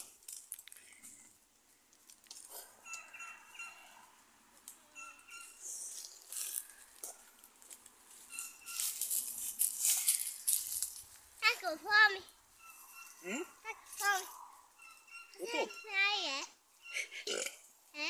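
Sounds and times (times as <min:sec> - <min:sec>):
small bird chirping: 0:04.8 - 0:06.9, 0:08.2 - 0:09.0, 0:12.5 - 0:17.2.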